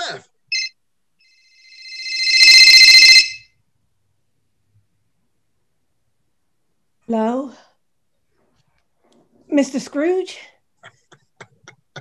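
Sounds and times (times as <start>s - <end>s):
phone ringtone ringing: 0.5s - 0.7s, 1.5s - 3.4s.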